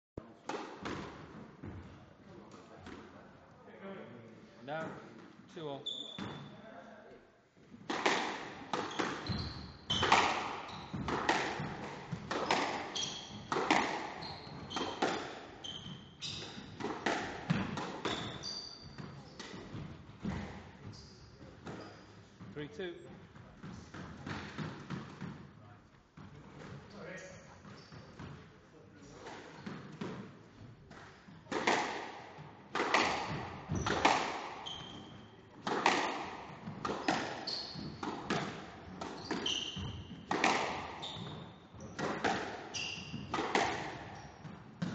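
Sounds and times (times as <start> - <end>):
squash ball hitting rackets and walls: 0.2 - 2.0, 7.7 - 20.9, 23.3 - 25.6, 29.1 - 44.9
shoes squeaking on wooden floor: 8.7 - 22.4, 33.0 - 36.0, 36.6 - 44.9.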